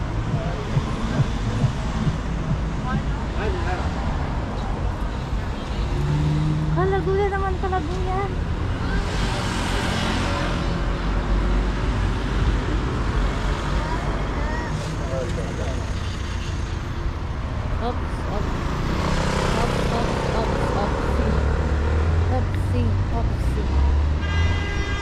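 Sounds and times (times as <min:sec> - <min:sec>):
cars driving past: 0:00.0 - 0:25.0
voices: 0:17.7 - 0:24.1.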